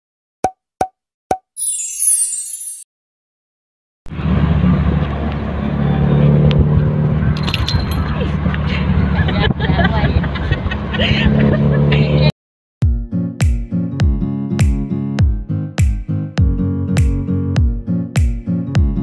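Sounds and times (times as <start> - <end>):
bright sparkling shimmer: 1.6 - 2.8
car engine and road rumble: 4.1 - 12.3
light jingling: 7.4 - 8.3.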